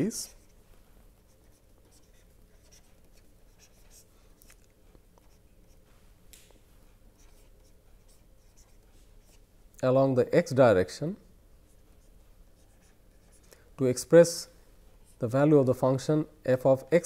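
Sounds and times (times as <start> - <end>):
stylus scratching and tapping tablet: 0.0 - 9.4, 11.6 - 13.6
low steady hum: 0.0 - 17.0.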